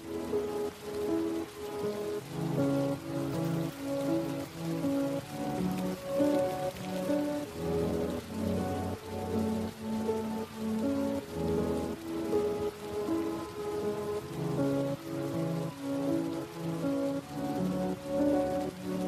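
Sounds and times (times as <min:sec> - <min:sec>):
rain hissing: 0:00.0 - 0:19.0
soft instrumental music: 0:00.0 - 0:19.0.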